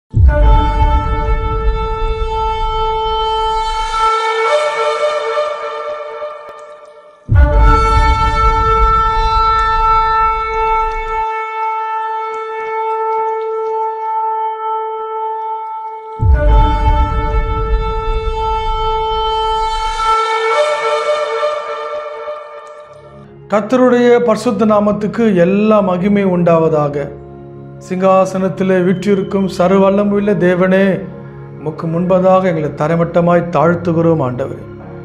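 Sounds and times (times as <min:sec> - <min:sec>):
long horn blast: 0:00.2 - 0:23.5.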